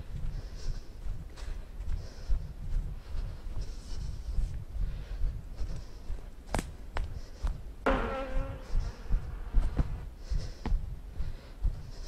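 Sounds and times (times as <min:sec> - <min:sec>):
wind buffeting microphone: 0:08.4 - 0:12.0.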